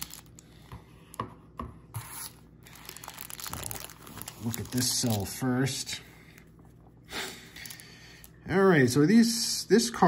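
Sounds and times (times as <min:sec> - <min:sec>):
plastic wrapper crinkling: 0:00.0 - 0:00.5, 0:02.1 - 0:05.7, 0:07.5 - 0:08.3.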